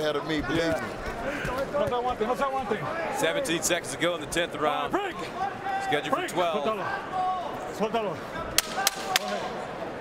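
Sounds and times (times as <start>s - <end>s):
arena crowd murmuring: 0.0s - 10.0s.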